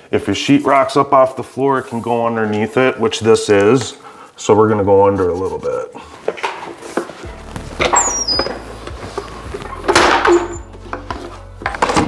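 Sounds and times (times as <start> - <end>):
background music with low drone: 6.8 - 12.0
plank cutter scraping squeak: 7.8 - 10.6.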